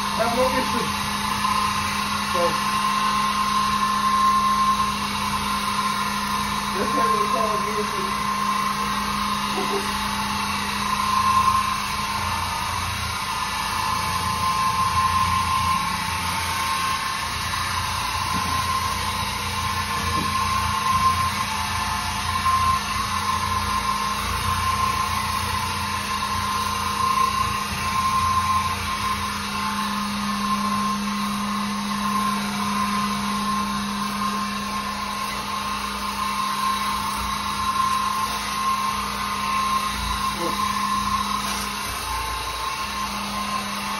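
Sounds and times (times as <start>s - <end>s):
floor machine motor hum: 0.0s - 43.9s.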